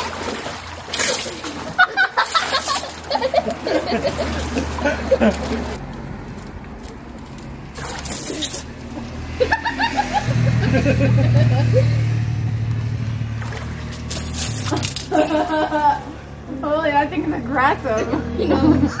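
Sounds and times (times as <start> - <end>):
water sloshing and splashing: 0.0 - 18.2
steady low hum: 9.0 - 19.0
voices: 14.6 - 19.0.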